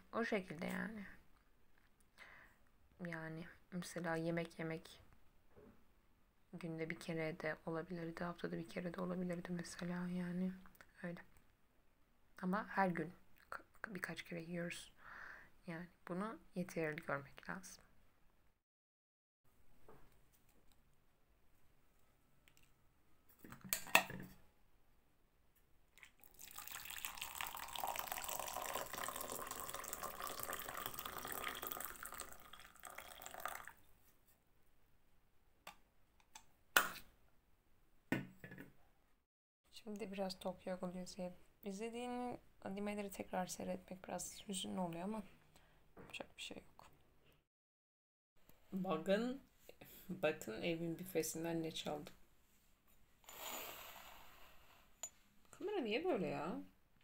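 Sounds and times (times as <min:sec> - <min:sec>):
water pouring into a mug: 0:26.0 - 0:33.8.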